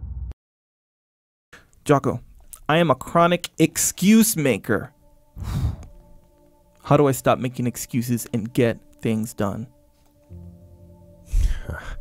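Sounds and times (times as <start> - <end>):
person speaking: 1.8 - 5.8, 6.7 - 9.8
faint background music: 1.8 - 12.0
man sighing: 5.4 - 5.9, 11.2 - 12.0.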